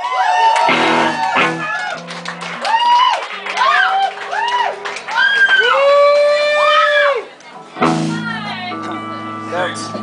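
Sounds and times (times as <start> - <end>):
electric guitar swooping tones: 0.7 - 2.6, 7.6 - 10.0.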